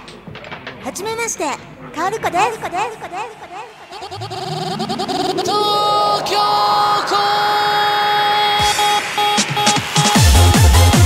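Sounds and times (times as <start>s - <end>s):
held synthesizer tone: 3.6s - 8.5s
low falling synth sweep: 3.8s - 8.6s.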